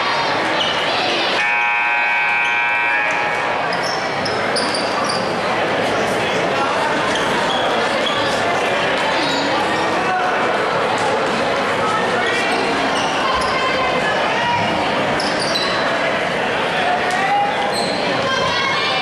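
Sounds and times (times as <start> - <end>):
crowd chattering in a hall: 0.0 - 19.0.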